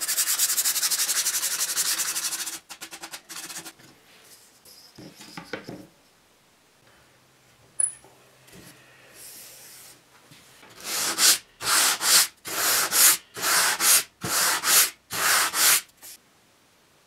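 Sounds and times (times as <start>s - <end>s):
sanding block rubbing on wood: 0.0s - 3.8s, 10.8s - 15.9s.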